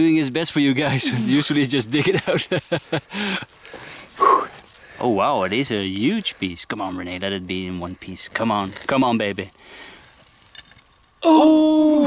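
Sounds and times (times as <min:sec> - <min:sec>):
man laughing: 0:01.0 - 0:03.5.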